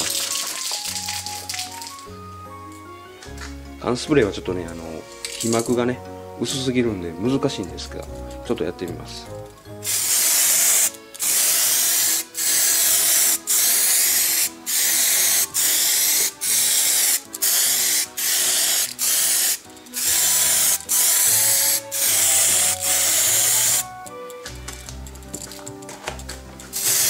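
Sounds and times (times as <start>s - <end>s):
spray paint can hissing: 0.0s - 2.1s, 9.8s - 24.0s, 26.7s - 27.0s
soft background music: 0.0s - 27.0s.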